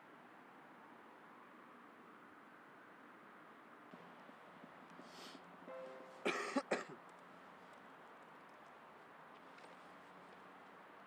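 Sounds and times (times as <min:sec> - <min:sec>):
person coughing: 0:06.2 - 0:07.0.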